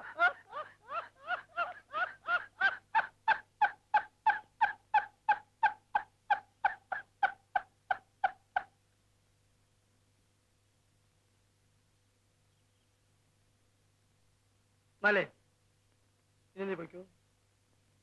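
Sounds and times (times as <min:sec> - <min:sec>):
man laughing: 0:00.0 - 0:04.4.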